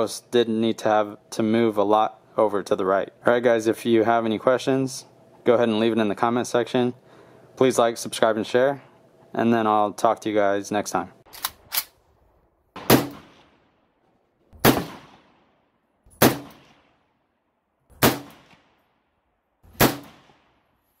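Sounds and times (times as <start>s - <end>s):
rifle shots with echo: 12.8s - 13.8s, 14.6s - 15.6s, 16.2s - 17.1s, 18.0s - 18.9s, 19.7s - 20.7s.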